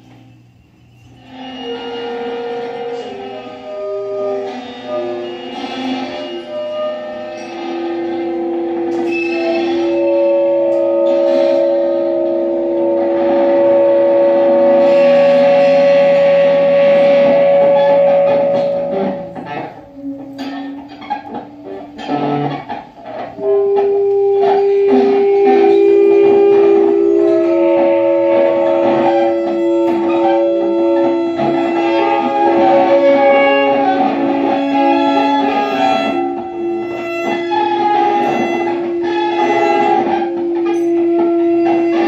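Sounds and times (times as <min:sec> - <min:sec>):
sustained dense chord: 0:01.1 - 0:42.0
plucked guitar notes: 0:01.2 - 0:42.0.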